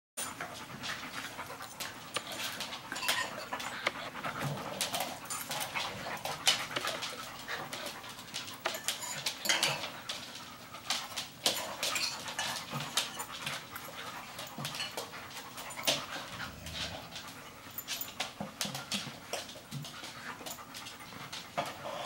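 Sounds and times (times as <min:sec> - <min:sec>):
dogs panting: 0:00.2 - 0:22.0.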